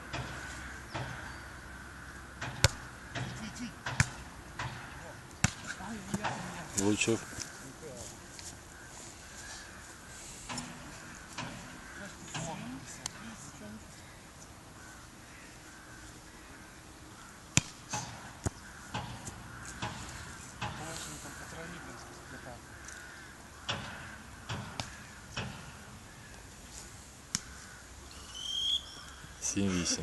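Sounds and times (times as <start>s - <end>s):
volleyball slaps: 2.4s - 6.5s, 17.5s - 20.0s, 24.5s - 25.6s.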